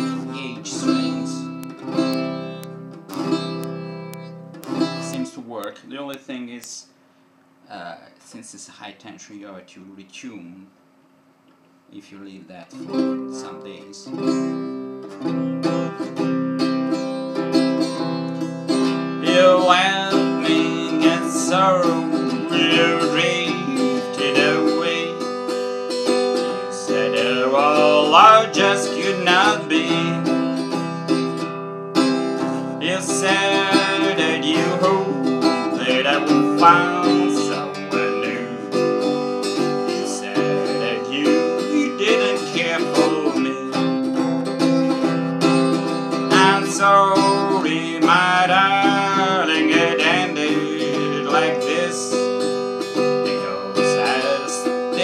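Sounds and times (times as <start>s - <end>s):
man singing: 0.0s - 1.5s, 19.2s - 25.5s, 26.3s - 30.6s, 32.8s - 44.2s, 46.3s - 52.3s, 53.0s - 55.0s
acoustic guitar strummed and picked: 0.0s - 5.4s, 12.8s - 55.0s.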